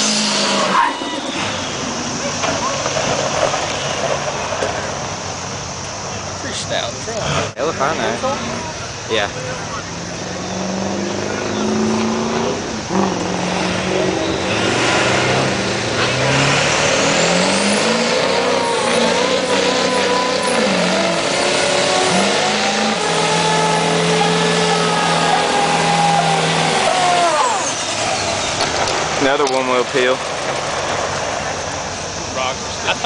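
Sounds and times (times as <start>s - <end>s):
engine revving high: 0.0s - 3.3s, 7.1s - 30.2s
tyres spinning on pavement: 0.0s - 10.2s, 12.5s - 33.0s.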